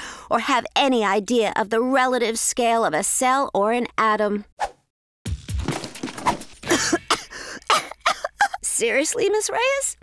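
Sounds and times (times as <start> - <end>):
cartoon character coughing: 6.7 - 8.0.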